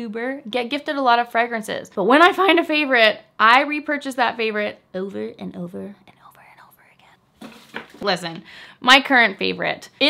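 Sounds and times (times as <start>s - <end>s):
woman whispering: 5.9s - 7.3s.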